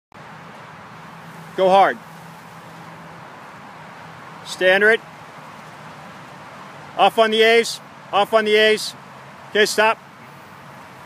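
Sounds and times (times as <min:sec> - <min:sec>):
distant road traffic: 0:00.1 - 0:11.0.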